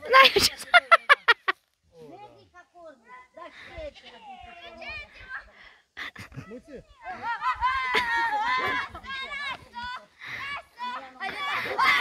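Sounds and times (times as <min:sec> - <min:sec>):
children squealing and laughing: 0:03.1 - 0:12.0.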